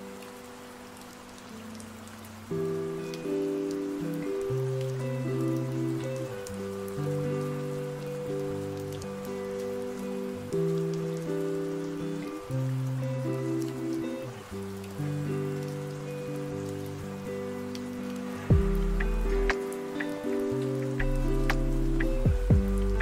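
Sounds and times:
lofi music with soft chords: 0:00.0 - 0:23.0
steady rain: 0:00.0 - 0:23.0
water dripping: 0:00.0 - 0:23.0.

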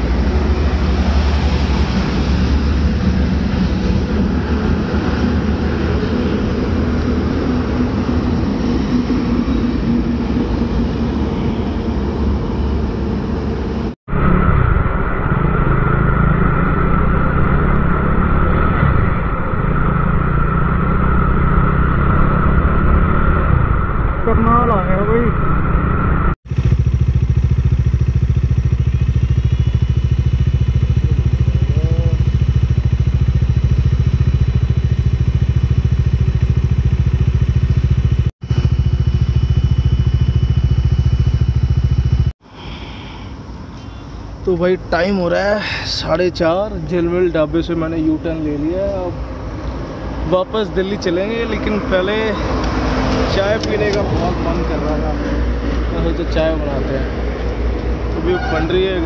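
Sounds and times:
motorcycle engine droning: 0:00.0 - 0:59.0.

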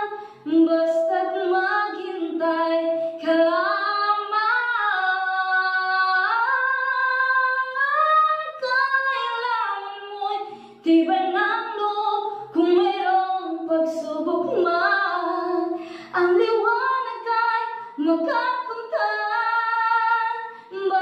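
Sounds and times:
woman singing a slow ballad: 0:00.0 - 0:21.0.

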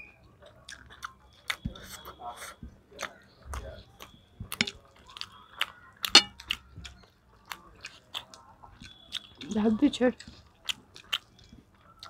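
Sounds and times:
chewing and mouth clicks: 0:00.2 - 0:12.0.

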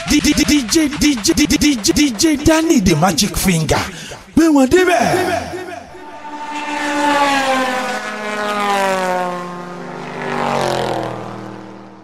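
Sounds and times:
droning tone with overtones: 0:05.2 - 0:10.3.

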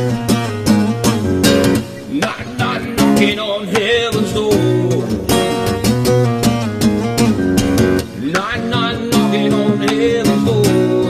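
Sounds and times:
fingerstyle acoustic guitar: 0:00.0 - 0:11.0.

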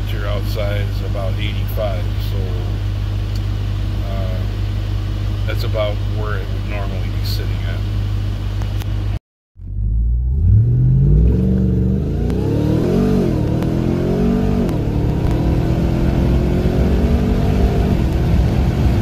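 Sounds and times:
engine at full throttle: 0:00.0 - 0:08.1, 0:09.6 - 0:19.0.

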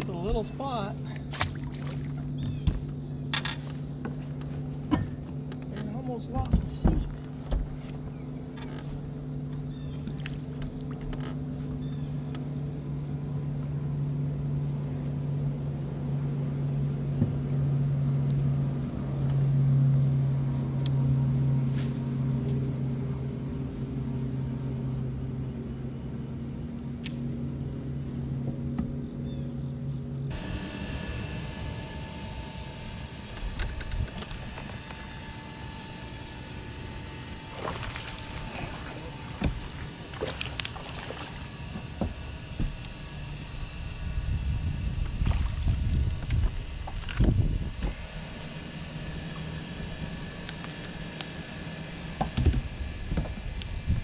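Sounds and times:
water noise: 0:00.0 - 0:07.9, 0:10.0 - 0:11.7, 0:30.3 - 0:54.0
electric boat motor humming: 0:00.0 - 0:54.0
wind: 0:00.0 - 0:54.0.

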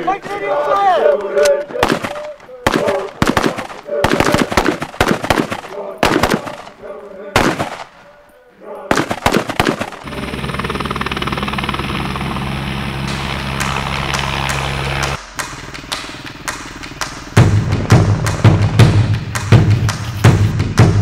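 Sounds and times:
rifle shots: 0:01.8 - 0:06.8, 0:07.4 - 0:08.0, 0:08.9 - 0:10.1
steady low drone: 0:10.0 - 0:20.8.

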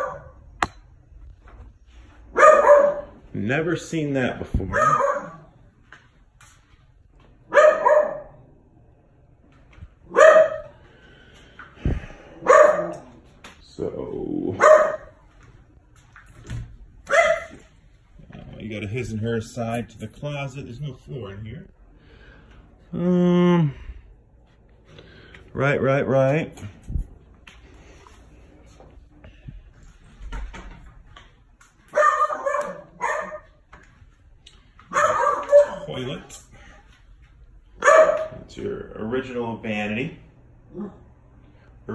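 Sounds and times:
dog barking: 0:00.0 - 0:00.4, 0:02.3 - 0:03.2, 0:04.7 - 0:05.5, 0:07.5 - 0:08.4, 0:10.1 - 0:10.8, 0:12.4 - 0:13.2, 0:14.6 - 0:15.2, 0:17.1 - 0:17.7, 0:31.9 - 0:33.6, 0:34.9 - 0:36.0, 0:37.8 - 0:38.4.

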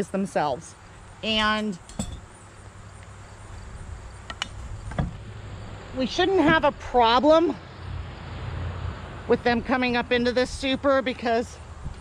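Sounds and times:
faint insects: 0:00.0 - 0:12.0
wind buffeting microphone: 0:09.3 - 0:12.0.

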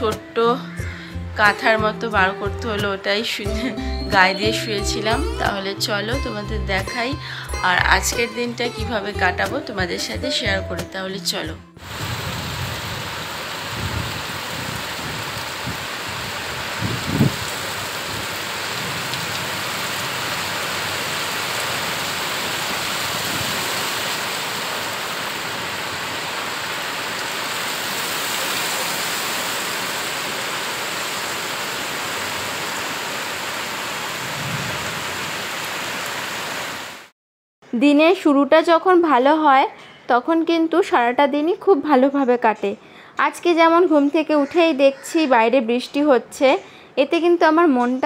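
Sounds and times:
heavy rain falling: 0:11.8 - 0:37.1.

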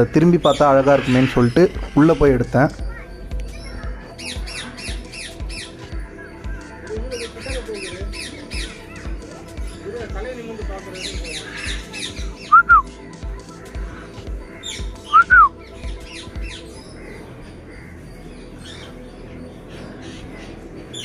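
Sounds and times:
birds squawking and chattering: 0:00.0 - 0:21.0.

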